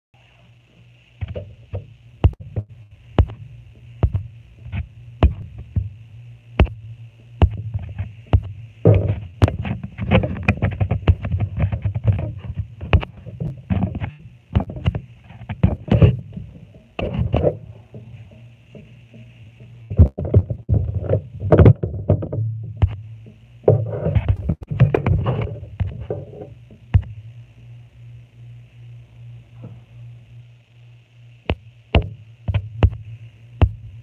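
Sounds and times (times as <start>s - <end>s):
steady low hum: 0.2s - 34.0s
phone handling bumps and rubs: 7.4s - 18.1s, 23.7s - 27.1s.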